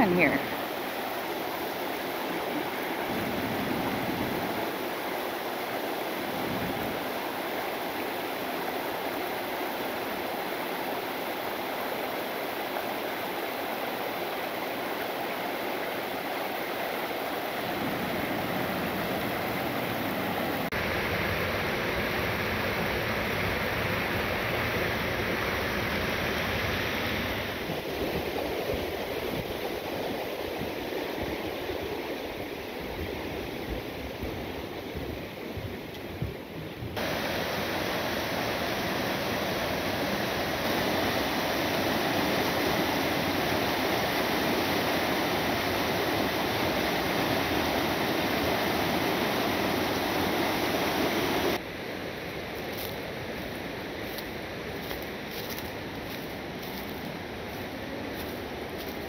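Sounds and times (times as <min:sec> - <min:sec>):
river rushing over rocks: 0:00.0 - 0:35.5, 0:37.0 - 0:59.0.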